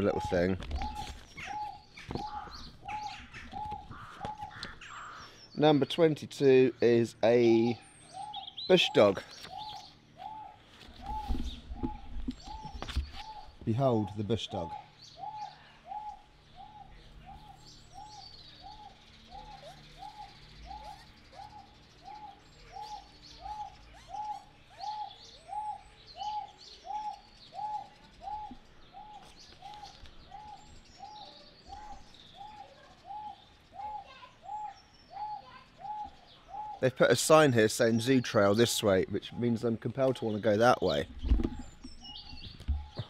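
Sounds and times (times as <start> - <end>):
pigeon cooing: 0.0 - 5.2, 8.1 - 37.1
birds chirping: 0.0 - 43.0.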